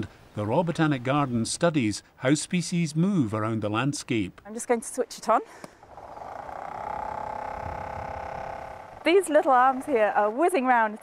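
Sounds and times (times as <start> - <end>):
electric motor humming: 5.8 - 9.9.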